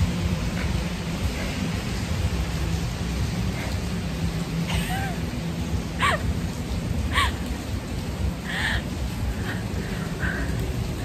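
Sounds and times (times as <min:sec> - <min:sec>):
heavy rain pouring: 0:00.0 - 0:11.0.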